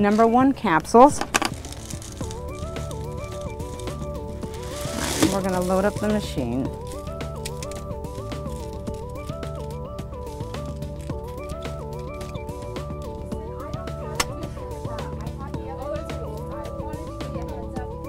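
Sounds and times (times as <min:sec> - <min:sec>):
instrumental background music: 0:00.0 - 0:18.0
light clicks of capsules loading: 0:06.9 - 0:09.7.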